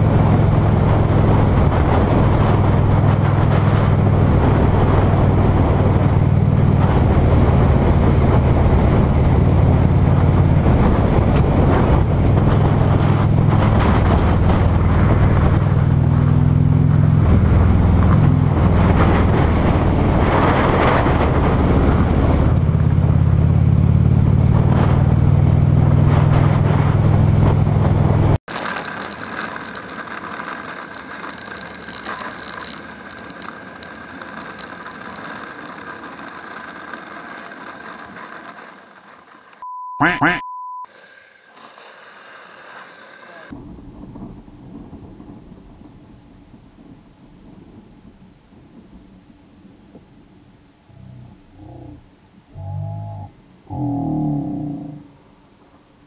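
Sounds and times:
wind noise on microphone: 0:00.0 - 0:39.4
motorcycle engine running: 0:21.0 - 0:39.6
short high beep: 0:39.6 - 0:40.9.

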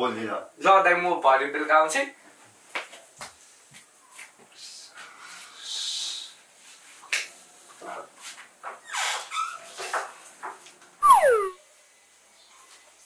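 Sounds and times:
whining cry sliding down: 0:11.0 - 0:11.6.

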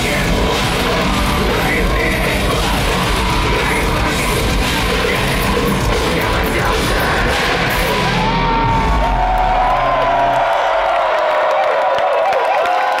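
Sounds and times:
live metal band playing: 0:00.0 - 0:10.6
crowd cheering and whooping: 0:00.0 - 0:13.0.

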